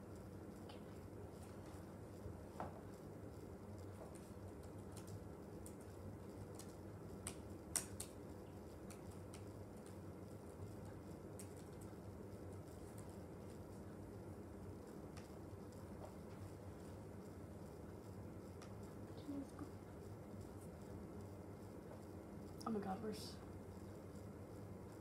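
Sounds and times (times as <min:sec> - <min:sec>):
low room hum: 0:00.0 - 0:25.0
laptop keyboard typing: 0:04.1 - 0:13.8.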